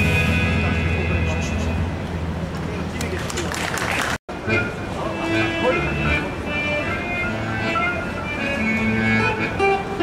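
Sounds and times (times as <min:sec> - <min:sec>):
accordion: 0:04.3 - 0:10.0.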